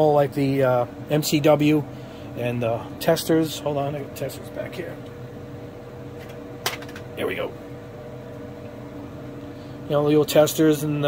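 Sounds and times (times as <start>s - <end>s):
dehydrator fan humming: 0.0s - 11.0s.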